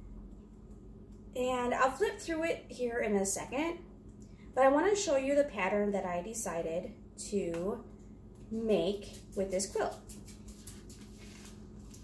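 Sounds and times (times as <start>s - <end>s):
book pages flipping: 9.0s - 12.0s.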